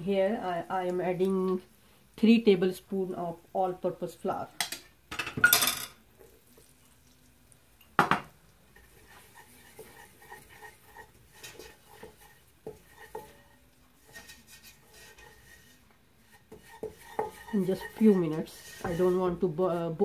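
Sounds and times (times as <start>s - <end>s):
wooden spoon scraping steel pot: 8.7s - 20.0s.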